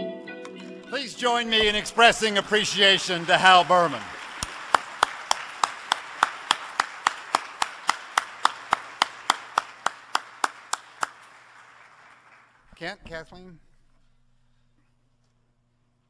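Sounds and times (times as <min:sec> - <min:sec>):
close person clapping: 0:00.4 - 0:12.7
audience applause: 0:01.0 - 0:12.7.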